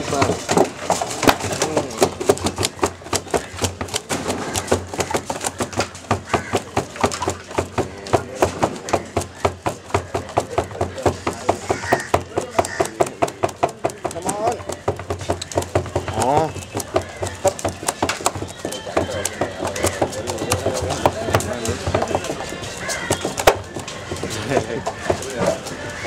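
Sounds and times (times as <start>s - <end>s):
wings beating against plastic barrel: 0.0s - 26.0s.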